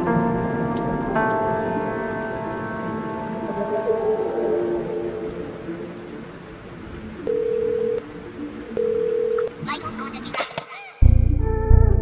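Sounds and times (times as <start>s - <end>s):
soft rain-like hiss: 0.0s - 10.0s.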